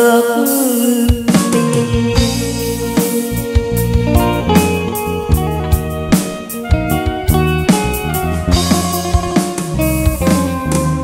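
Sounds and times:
drum kit beat: 0.0 - 11.0
electric guitar melody: 0.0 - 11.0
keyboard: 0.0 - 11.0
bass guitar: 1.2 - 11.0.

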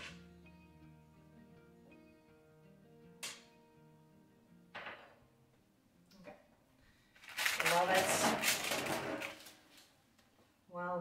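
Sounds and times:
rustling: 7.2 - 10.0
woman speaking: 7.6 - 8.4, 10.7 - 11.0.

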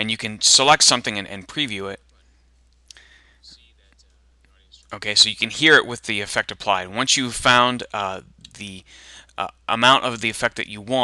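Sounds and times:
faint whispery distorted speech: 3.1 - 5.0.

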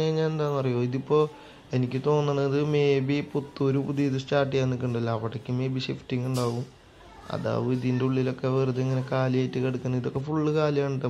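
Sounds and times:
man chanting speech: 0.0 - 6.7.

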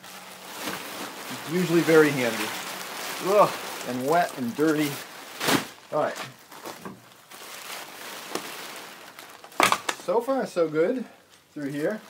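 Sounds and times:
plastic sheeting rustling and crinkling: 0.0 - 12.0.

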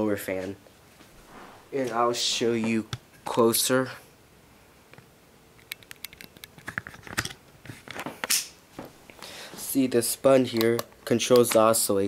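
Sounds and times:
tower fan airflow: 0.0 - 5.8
camera handling clicks and rustles: 5.6 - 8.5.

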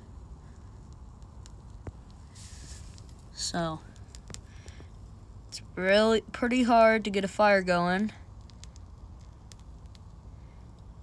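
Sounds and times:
small fire crackling: 0.0 - 11.0
steady low rumble: 0.0 - 11.0.

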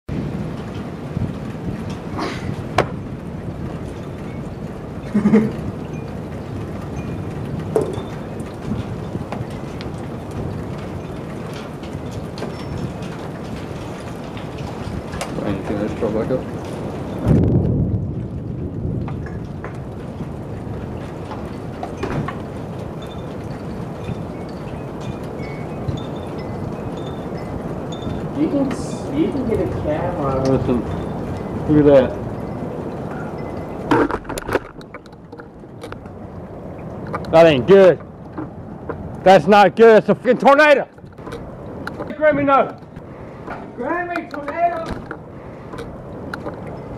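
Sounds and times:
storm wind: 0.1 - 46.9.

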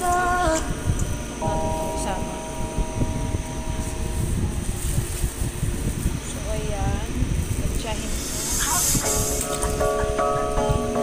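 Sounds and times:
low rumbling stove noise: 0.0 - 11.0.

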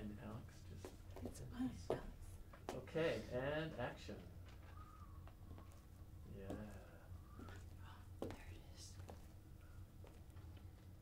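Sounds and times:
low steady hum: 0.0 - 11.0
faint whispering: 6.7 - 9.3.

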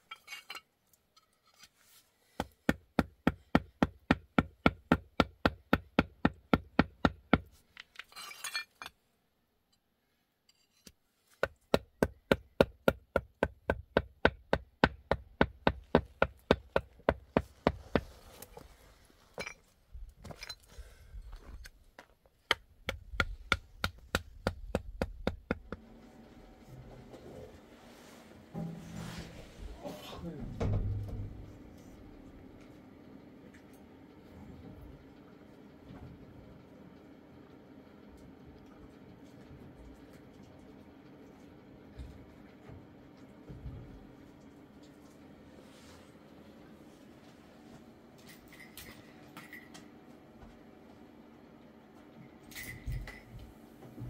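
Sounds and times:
indoor sounds: 14.2 - 51.0.

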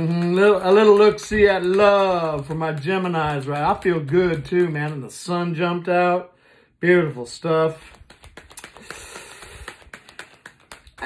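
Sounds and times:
cards being shuffled by hand: 0.0 - 5.6, 7.5 - 11.0.

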